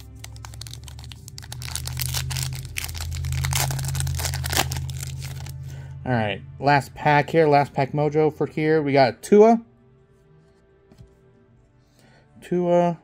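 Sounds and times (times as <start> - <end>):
foil pack crinkling and tearing: 0.0 - 5.6
background music with bass: 0.0 - 10.2.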